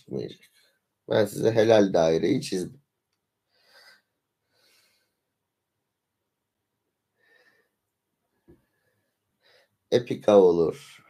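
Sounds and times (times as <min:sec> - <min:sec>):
faint breaths: 0:03.4 - 0:05.4, 0:07.2 - 0:07.8, 0:08.5 - 0:09.9.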